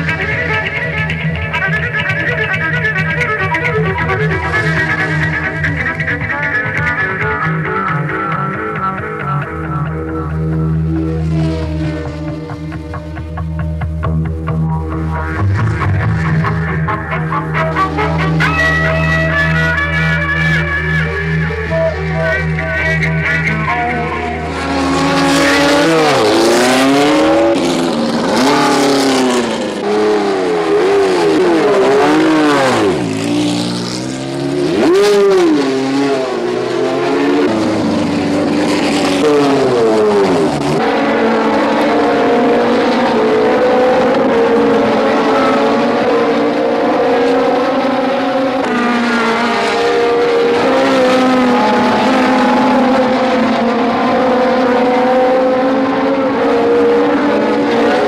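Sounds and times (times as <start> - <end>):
racing car engines passing by: 0.0 - 58.0
steady racing engine note: 0.0 - 58.0.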